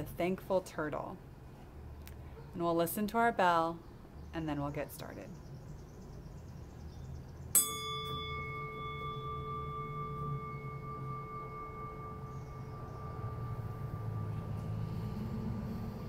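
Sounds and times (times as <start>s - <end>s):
meditation bell ringing: 7.5s - 16.0s.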